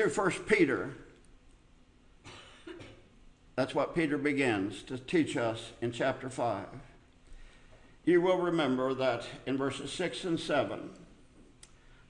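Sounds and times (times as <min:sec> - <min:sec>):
man coughing faintly: 0:02.2 - 0:03.1.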